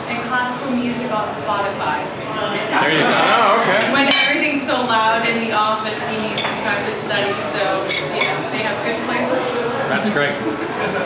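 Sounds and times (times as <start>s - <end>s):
cutlery clinking on plates: 3.8s - 4.4s, 6.2s - 7.2s, 7.8s - 8.4s.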